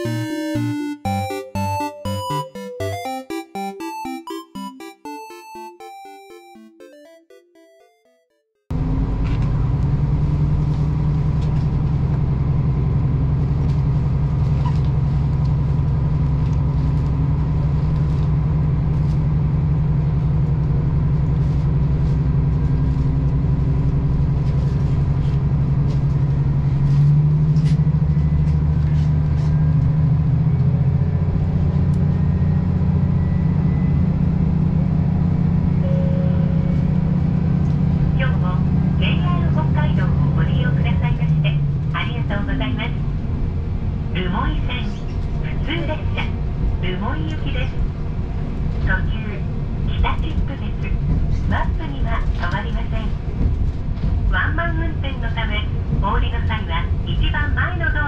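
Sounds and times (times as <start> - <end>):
train engine humming: 8.7 - 58.0.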